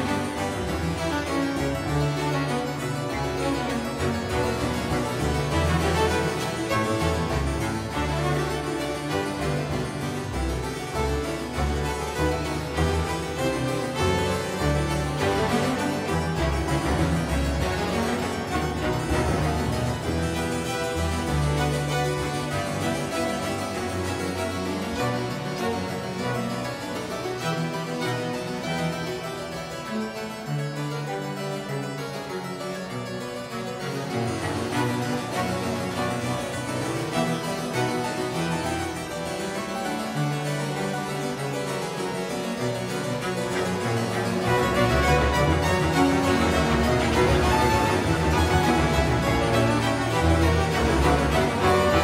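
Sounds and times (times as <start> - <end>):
harpsichord playing baroque music: 0.0 - 52.0.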